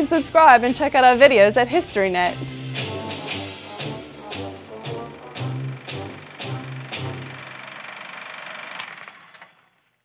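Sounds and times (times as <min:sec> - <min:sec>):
jingle music chord: 0:02.1 - 0:07.8.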